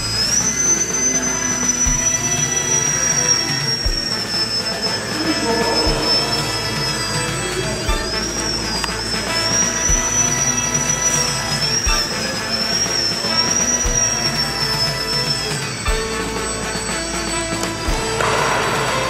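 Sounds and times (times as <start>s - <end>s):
electric motor and propeller whine: 0.0s - 19.0s
music playing: 0.0s - 19.0s.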